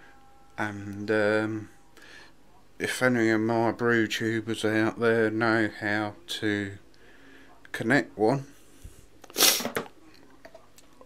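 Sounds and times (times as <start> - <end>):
man sniffing sharply: 9.3 - 9.8.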